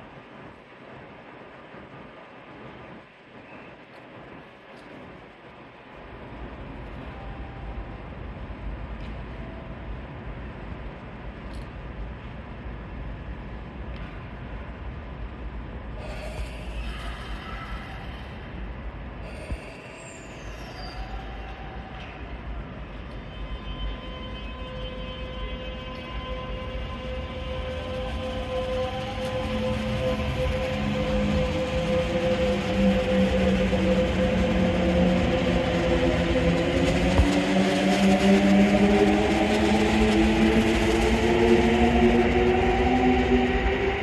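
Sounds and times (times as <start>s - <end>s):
wheels rumbling on rails: 0.0s - 44.0s
electric train motors whining: 23.3s - 44.0s.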